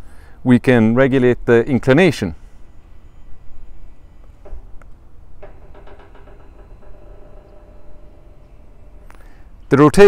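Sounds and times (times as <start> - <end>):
electric motor whine: 2.4 - 9.7
clicks: 3.9 - 9.4.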